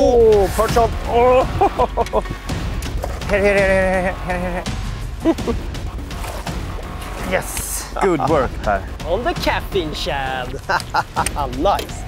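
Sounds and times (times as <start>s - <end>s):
man laughing: 1.2s - 2.5s, 3.3s - 5.7s, 10.4s - 11.6s.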